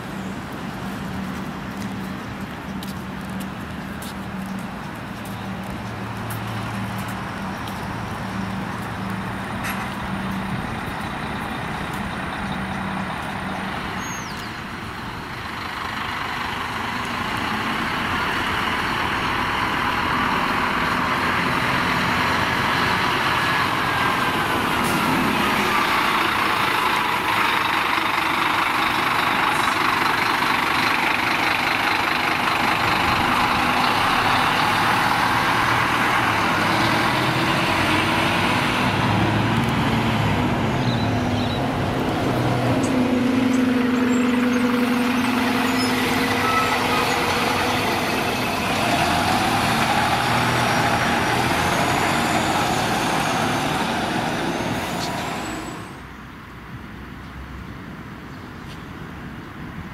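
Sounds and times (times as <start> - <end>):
bus engine driving off: 0.0 - 56.2.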